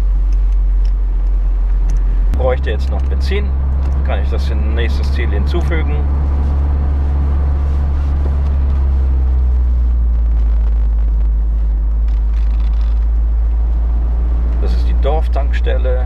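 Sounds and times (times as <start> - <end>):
car engine drone: 0.0 - 16.0
wind and tyre noise: 0.0 - 16.0.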